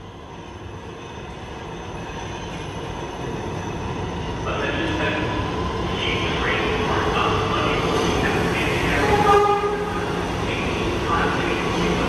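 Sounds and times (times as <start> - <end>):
subway train rumbling on track: 0.0 - 12.0.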